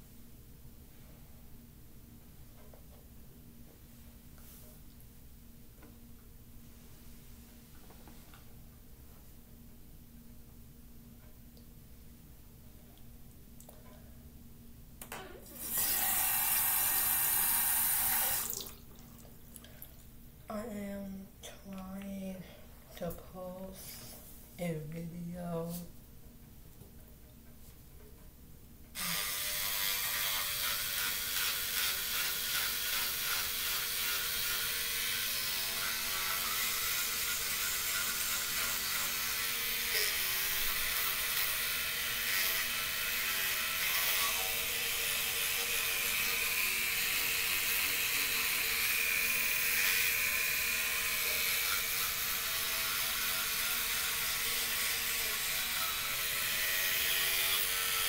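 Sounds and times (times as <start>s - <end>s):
electric toothbrush buzzing: 15.5s - 18.7s, 29.0s - 58.0s.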